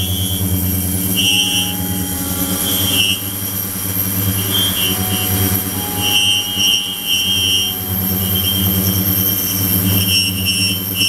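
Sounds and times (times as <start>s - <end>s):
high-pitched whining tones: 0.0s - 11.0s
wavering whine: 0.0s - 11.0s.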